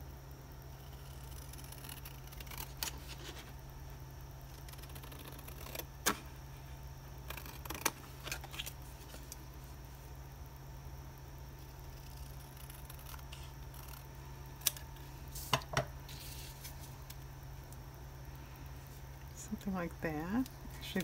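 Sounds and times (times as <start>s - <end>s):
scissors snipping paper: 1.0s - 3.4s.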